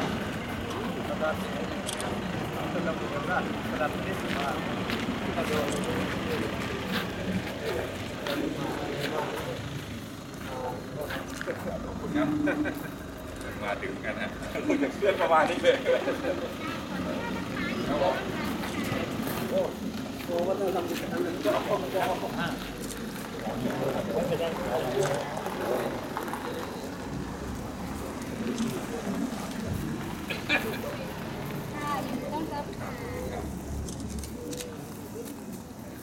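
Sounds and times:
murmured talk: 0:00.0 - 0:36.0
van engine idling: 0:00.0 - 0:36.0.

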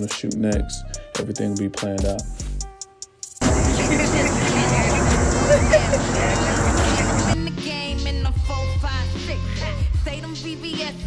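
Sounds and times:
loud low rumble: 0:03.4 - 0:07.4
several voices talking: 0:03.4 - 0:07.4.

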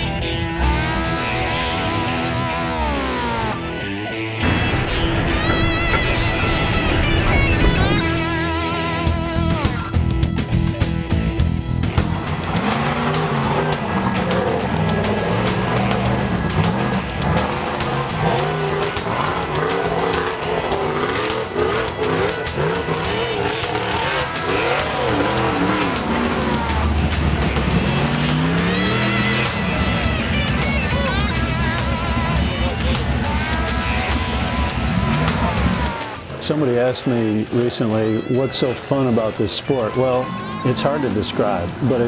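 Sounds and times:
background music: 0:00.0 - 0:42.0
buggy engines revving: 0:00.0 - 0:42.0.

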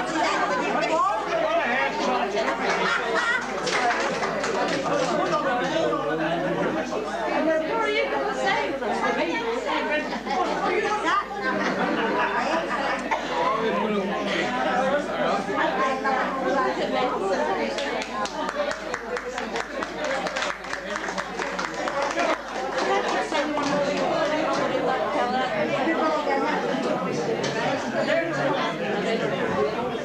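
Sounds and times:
crowd chatter: 0:00.0 - 0:30.0.

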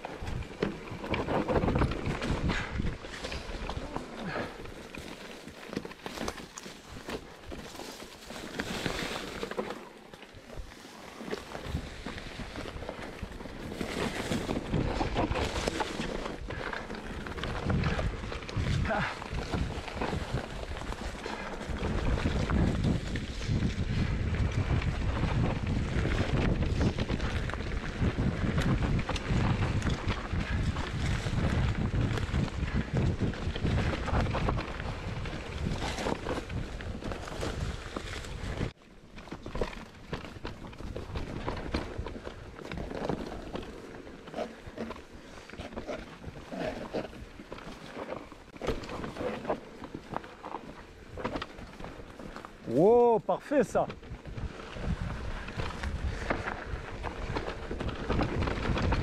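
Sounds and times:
bike knocking and rattling: 0:00.0 - 0:53.2, 0:53.8 - 0:59.0
bike tyres rolling over dirt and leaves: 0:00.0 - 0:59.0
wind buffeting microphone: 0:01.2 - 0:04.6, 0:14.3 - 0:38.8, 0:54.0 - 0:59.0.

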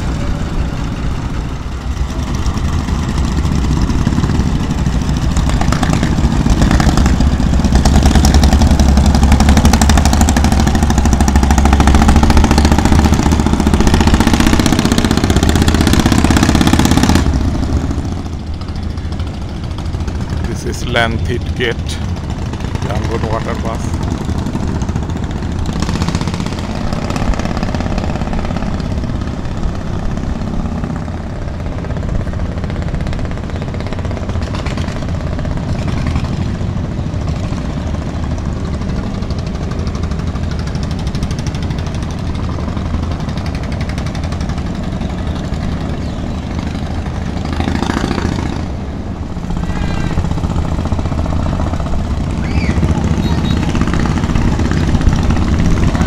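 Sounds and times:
boat engine running: 0:00.0 - 0:56.0.

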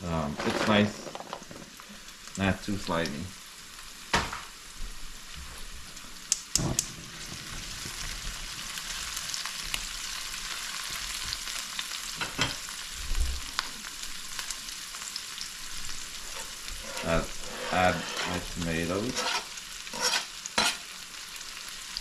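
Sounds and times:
onions sizzling in oil: 0:00.0 - 0:22.0.

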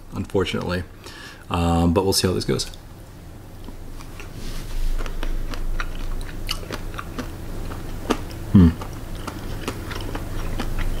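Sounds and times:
person chewing crunchy food: 0:03.6 - 0:11.0.

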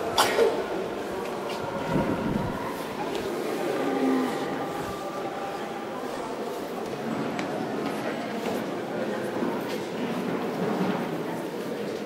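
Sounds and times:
murmur of low voices: 0:00.0 - 0:12.0.

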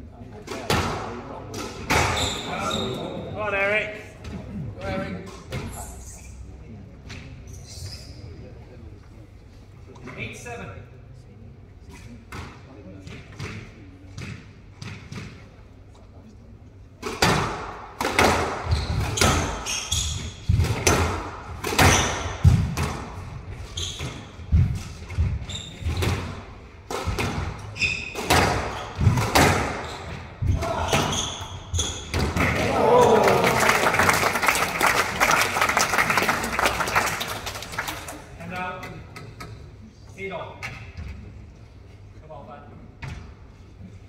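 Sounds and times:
rackets striking squash ball: 0:00.5 - 0:02.5, 0:17.0 - 0:32.6
shoes squeaking on wooden floor: 0:25.3 - 0:26.3, 0:27.6 - 0:32.4
spectators applauding and cheering: 0:32.6 - 0:38.2.

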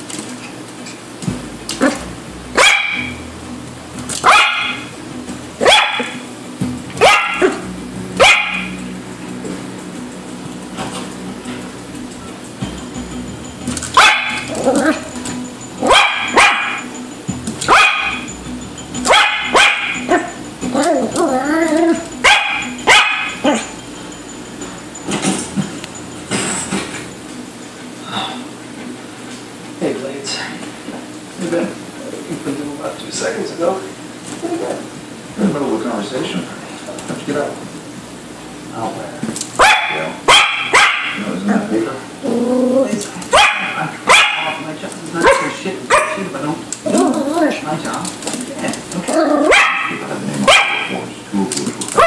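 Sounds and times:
puppy barking: 0:02.6 - 0:03.2, 0:04.2 - 0:04.9, 0:05.6 - 0:06.2, 0:07.0 - 0:07.6, 0:08.2 - 0:08.8, 0:13.9 - 0:15.1, 0:15.8 - 0:16.9, 0:17.6 - 0:18.3, 0:19.0 - 0:20.4, 0:21.1 - 0:23.7, 0:39.6 - 0:41.3, 0:43.3 - 0:44.6, 0:45.2 - 0:46.3, 0:49.1 - 0:51.1.

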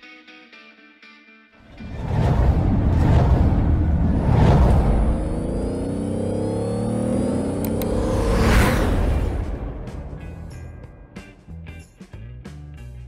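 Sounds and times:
car engine rumble and revving: 0:01.7 - 0:11.2.

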